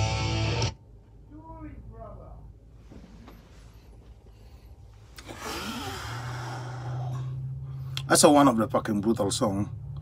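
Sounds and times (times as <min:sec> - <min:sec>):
low steady hum: 0:00.0 - 0:10.0
man exhaling breathily: 0:04.4 - 0:08.0.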